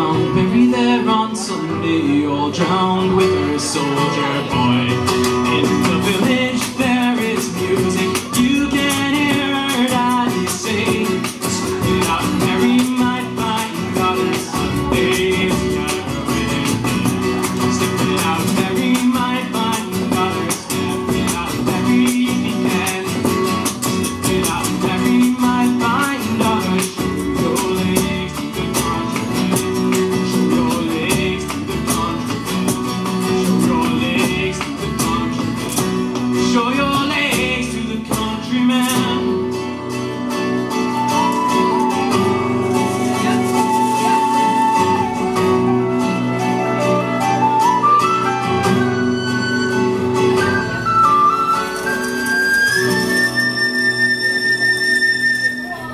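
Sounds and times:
upright bass: 0.0 - 51.5
strummed acoustic guitars: 0.0 - 55.9
driving frame drum beat: 4.8 - 39.4
high whistle melody: 40.8 - 55.9.

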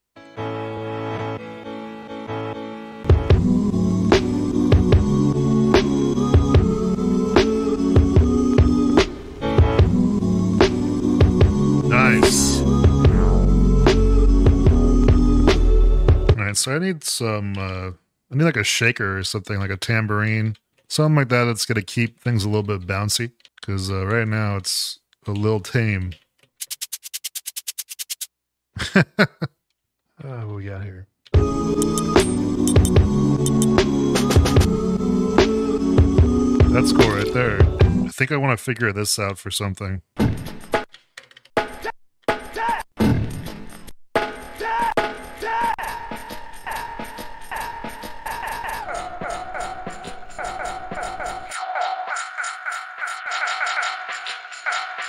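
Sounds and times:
shaker strokes: 26.6 - 28.3
chopped drum break beat: 36.0 - 38.0.

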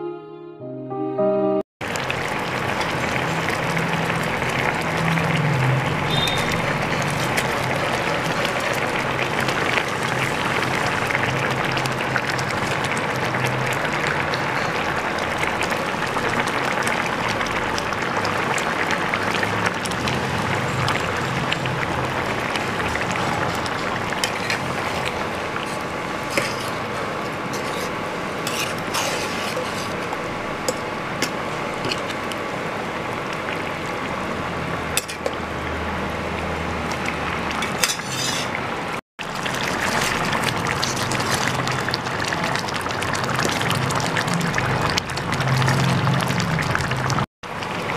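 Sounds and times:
gravy bubbling in a pan: 1.8 - 47.9.

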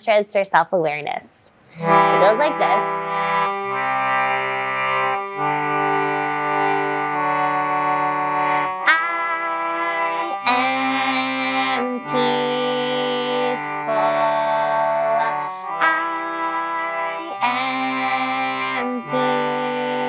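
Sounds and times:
harmonium playing chords: 1.7 - 20.0.

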